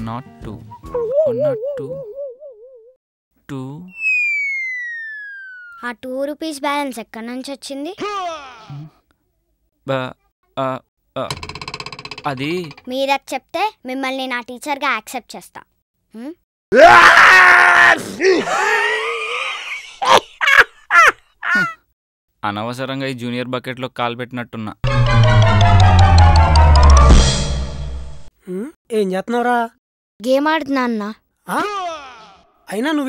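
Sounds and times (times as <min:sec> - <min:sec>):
whistle tone sliding down: 0:03.9 - 0:05.8
person screaming: 0:08.0 - 0:08.8, 0:16.7 - 0:19.6, 0:31.5 - 0:32.5.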